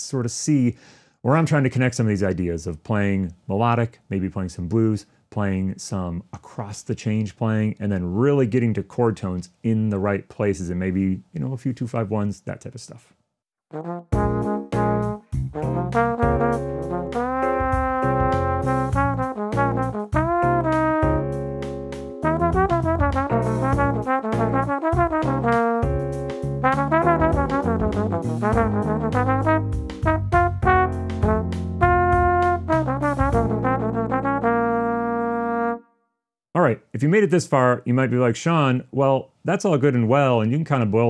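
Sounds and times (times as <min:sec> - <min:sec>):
trombone playing jazz blues: 0:13.7 - 0:35.8.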